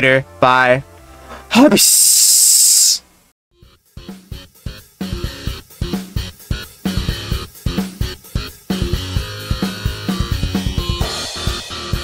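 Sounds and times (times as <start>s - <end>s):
drum hits of music: 4.0s - 12.0s.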